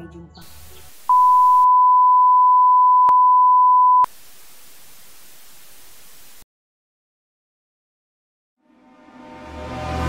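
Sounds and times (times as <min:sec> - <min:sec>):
steady high test tone beep: 0:01.1 - 0:04.1.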